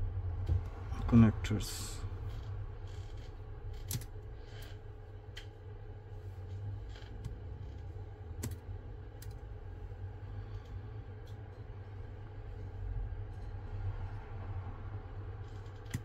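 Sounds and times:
steady low hum: 0:00.0 - 0:16.0
connectors clicking loose: 0:03.7 - 0:04.7, 0:08.4 - 0:09.4.

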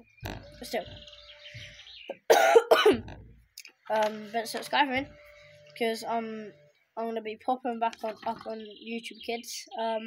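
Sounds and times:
young boy coughing: 0:02.2 - 0:03.1.

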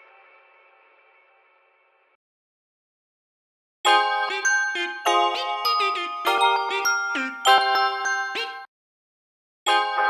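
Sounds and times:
lo-fi bell-like keyboard music: 0:03.9 - 0:08.7, 0:09.7 - 0:10.0.

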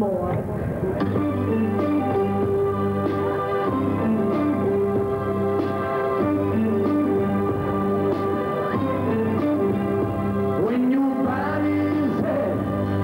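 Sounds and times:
live band playing held chords: 0:01.0 - 0:13.0.

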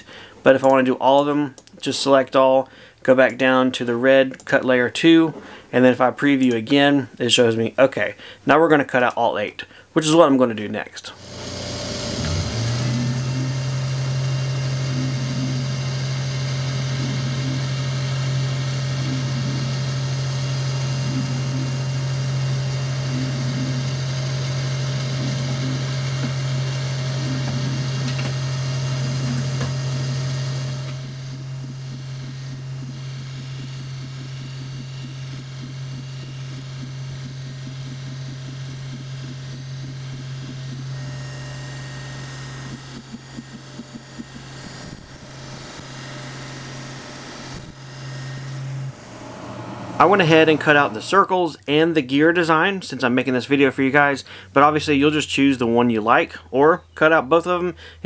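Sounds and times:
laser cutter humming: 0:11.2 - 0:51.3.

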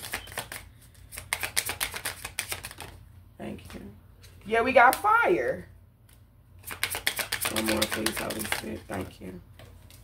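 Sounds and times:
cards being shuffled: 0:00.0 - 0:03.0, 0:06.1 - 0:10.0.

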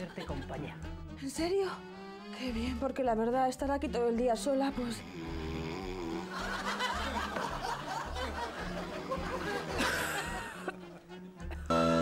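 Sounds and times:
soft background music: 0:00.0 - 0:12.0
audience laughter: 0:06.2 - 0:11.7.

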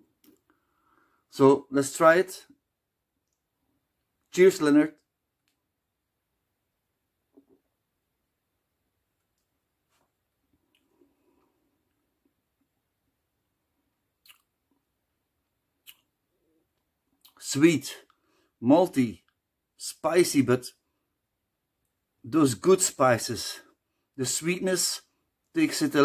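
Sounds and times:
lip and tongue smacks: 0:14.2 - 0:14.6, 0:15.8 - 0:16.1
mouth clicks: 0:14.2 - 0:14.6, 0:15.8 - 0:16.1, 0:17.2 - 0:17.4.

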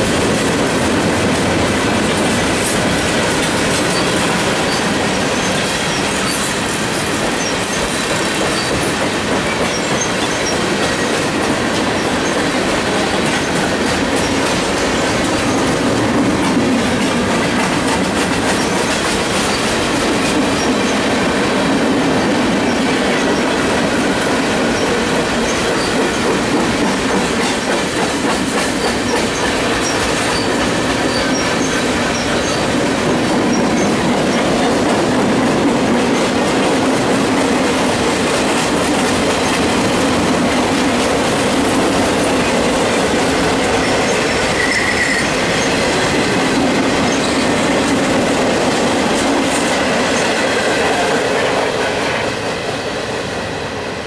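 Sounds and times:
train wheels rolling on rail: 0:00.0 - 0:54.0
high-pitched wheel squeals: 0:43.7 - 0:45.9.

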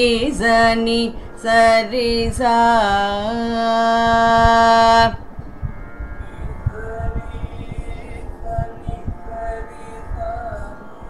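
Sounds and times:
person singing long note: 0:00.0 - 0:11.0.

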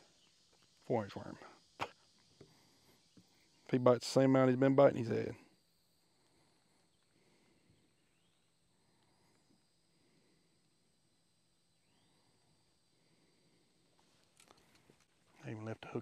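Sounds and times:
faint outdoor ambience: 0:00.0 - 0:16.0.

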